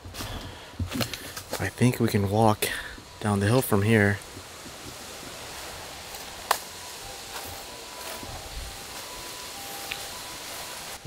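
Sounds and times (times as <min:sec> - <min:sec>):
outdoor hiss: 0:00.0 - 0:11.0.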